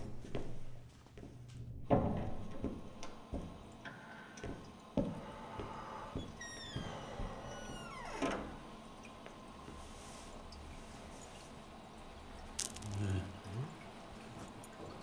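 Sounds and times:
slippered footsteps on tiled floor: 0.0 - 3.7, 4.4 - 7.4.

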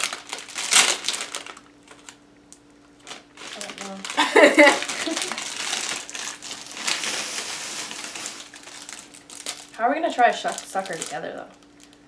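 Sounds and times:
plastic wrapper crackling: 0.0 - 2.2, 2.8 - 12.0.

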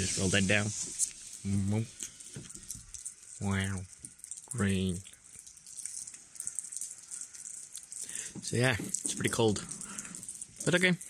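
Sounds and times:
rain falling: 0.0 - 11.0.

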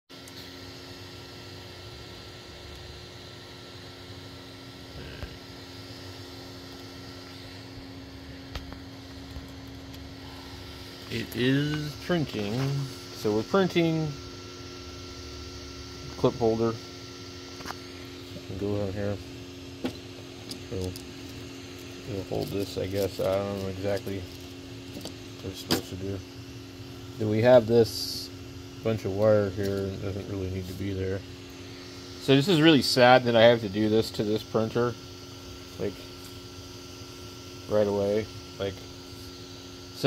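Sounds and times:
printer fans and motors humming: 0.1 - 40.0.

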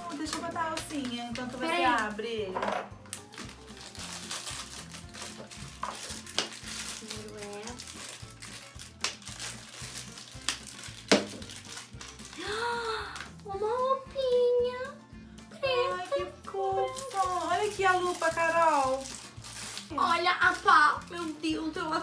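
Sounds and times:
plastic wrappers crinkling and tearing: 0.0 - 2.4, 3.0 - 14.6, 15.7 - 22.0
faint background music: 0.0 - 22.0.

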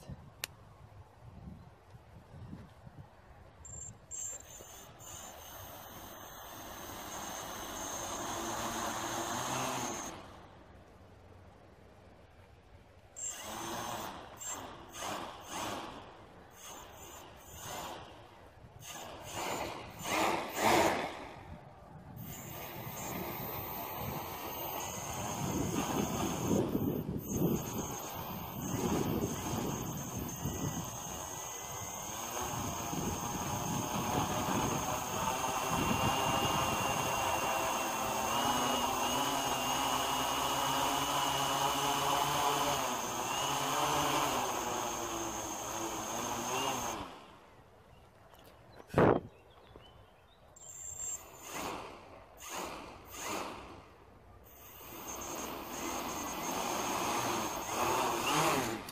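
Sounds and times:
drone motors whining: 3.7 - 10.6, 13.1 - 47.5, 50.6 - 53.8, 54.5 - 58.9.

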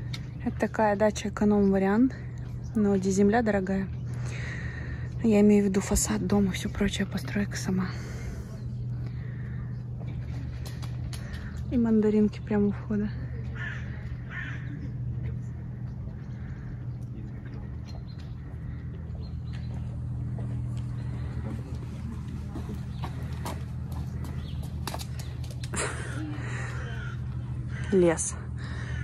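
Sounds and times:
stroller wheels rolling on asphalt: 15.9 - 28.2
footsteps: 19.5 - 25.8.

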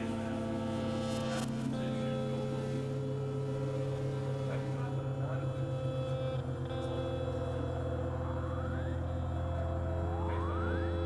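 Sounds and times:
synthesizer drone music: 0.0 - 11.0.

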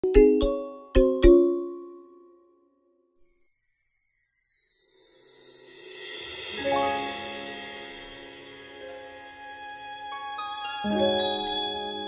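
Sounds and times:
xylophone-like mallet jingle: 0.0 - 2.4.

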